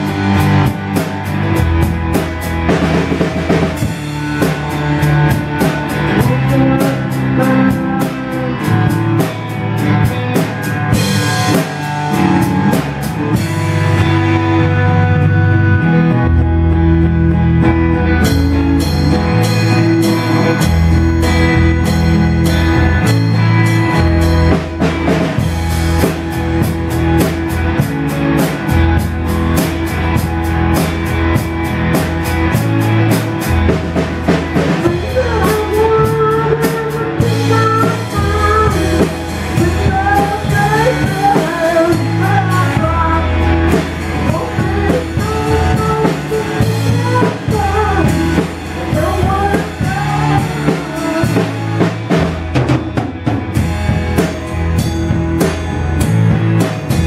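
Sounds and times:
bass guitar: 0:00.0 - 0:57.0
drum kit beat: 0:00.0 - 0:57.0
electric guitar: 0:00.0 - 0:57.0.

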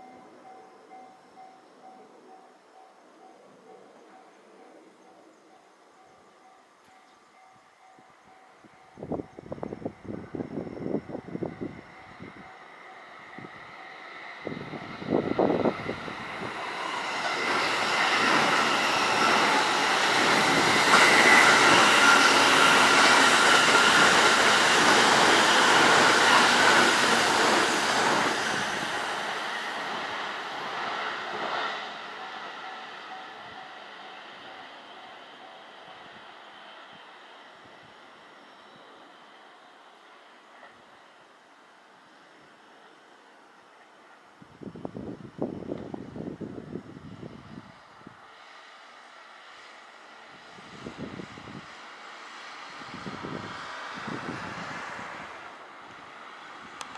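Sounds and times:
electric trains passing: 0:00.0 - 0:56.9.

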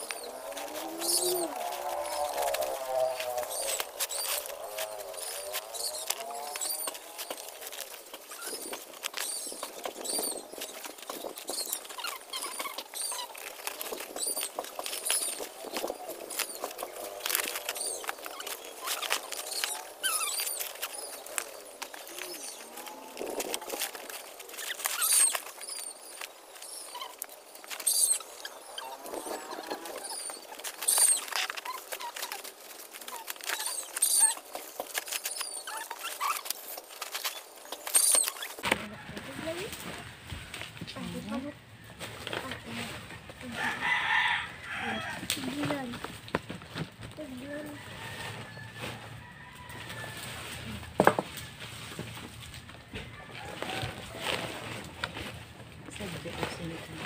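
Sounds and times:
twigs snapping: 0:00.0 - 0:38.8, 0:43.8 - 0:46.5
sticks rustling in plastic sacks: 0:00.0 - 0:57.0.

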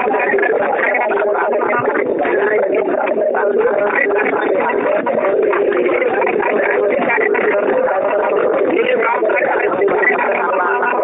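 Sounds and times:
many voices over telephone line: 0:00.0 - 0:11.0.

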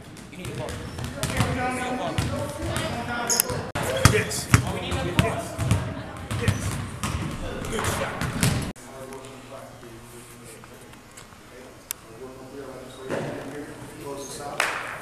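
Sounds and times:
basketballs bouncing on wooden floor: 0:00.1 - 0:03.1, 0:03.8 - 0:08.7
voices talking: 0:00.3 - 0:14.6.

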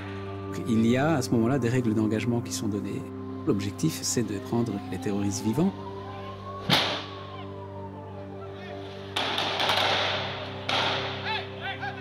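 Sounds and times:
held-note music underscore: 0:00.0 - 0:12.0
sharp cracks: 0:06.6 - 0:07.1, 0:09.2 - 0:11.3.

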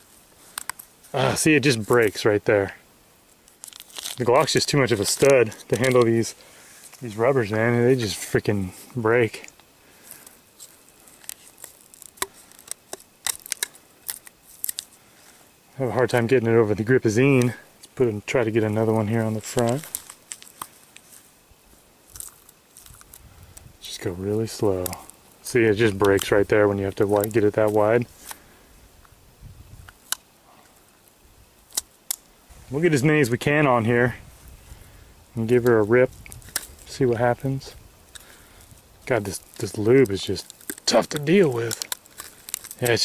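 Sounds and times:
rubber and plastic clicks and snaps: 0:10.6 - 0:14.9, 0:40.4 - 0:43.0.

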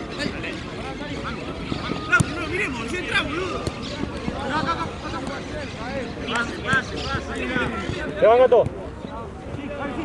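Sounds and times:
players shouting: 0:00.2 - 0:08.7
football being kicked: 0:02.0 - 0:02.4.

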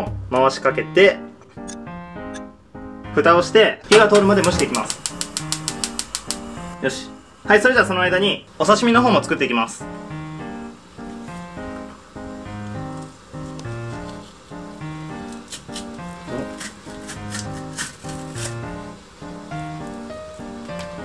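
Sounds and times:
light instrumental tune: 0:00.0 - 0:21.0.

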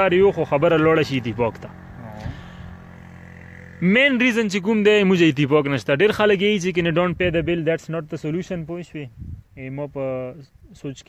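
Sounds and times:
man talking: 0:00.0 - 0:02.4, 0:03.8 - 0:11.0.

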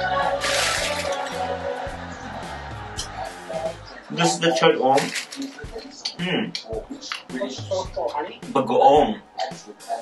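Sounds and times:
background music with bass line: 0:00.0 - 0:04.3, 0:05.6 - 0:10.0
plastic crinkling: 0:00.3 - 0:01.5, 0:04.9 - 0:05.8.

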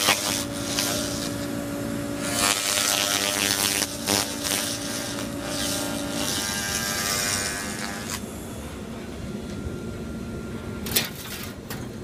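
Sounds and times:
steady electric hum: 0:00.0 - 0:12.0.

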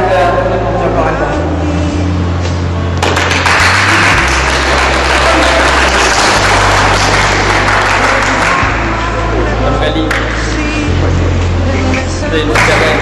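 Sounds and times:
background music with low bass: 0:00.0 - 0:13.0
audience applauding: 0:03.0 - 0:09.4.

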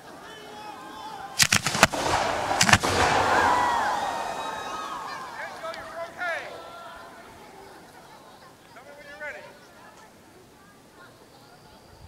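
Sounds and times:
firework hiss: 0:01.4 - 0:05.0
firework shells bursting: 0:01.4 - 0:05.9.

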